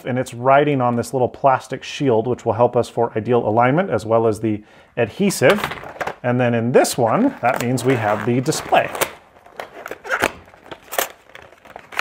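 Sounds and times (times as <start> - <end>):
plastic packaging crackling: 7.2 - 12.0.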